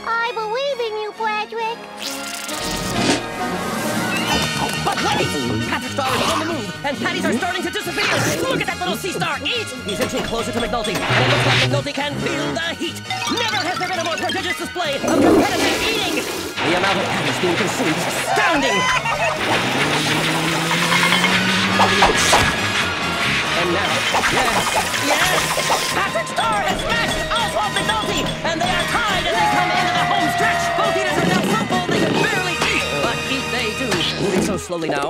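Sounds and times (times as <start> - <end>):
cartoon soundtrack music: 0.0 - 35.0.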